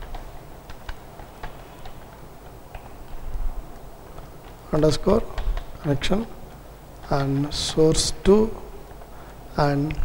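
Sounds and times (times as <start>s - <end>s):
keyboard keys clicking: 0.0s - 5.8s
low room hum: 0.0s - 10.0s.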